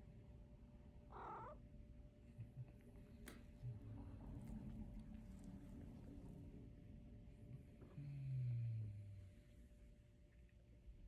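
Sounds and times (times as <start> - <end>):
cat meowing softly: 1.1 - 1.6.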